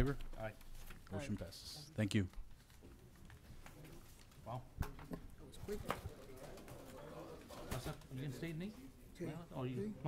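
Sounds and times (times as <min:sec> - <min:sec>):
men talking quietly: 0:00.0 - 0:10.0.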